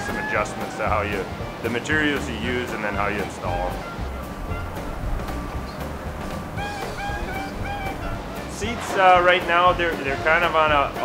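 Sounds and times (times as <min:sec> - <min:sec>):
low steady rumble: 0:03.0 - 0:08.7.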